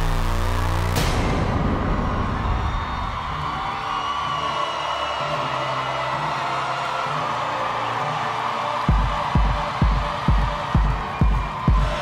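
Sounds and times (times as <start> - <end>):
crowd cheering and whooping: 1.1 - 12.0
kick drum beat: 8.9 - 12.0.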